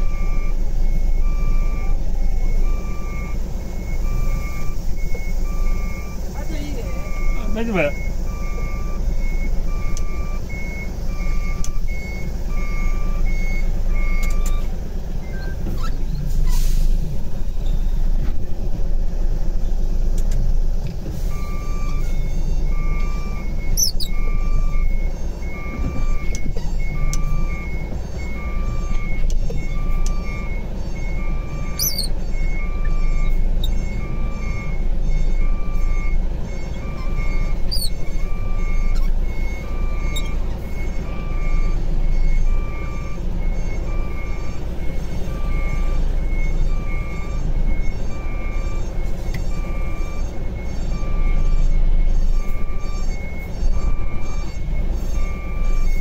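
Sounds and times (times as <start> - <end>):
diesel engine running: 0.0 - 56.0
truck reversing alarm beeping: 0.0 - 56.0.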